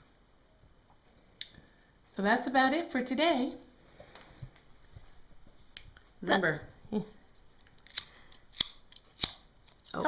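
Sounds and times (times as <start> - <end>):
lighter trigger clicking: 7.9 - 9.4.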